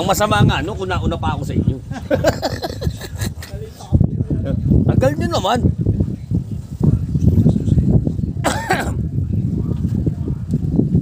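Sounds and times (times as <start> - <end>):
wind buffeting microphone: 0.0 - 11.0
person coughing: 8.4 - 9.0.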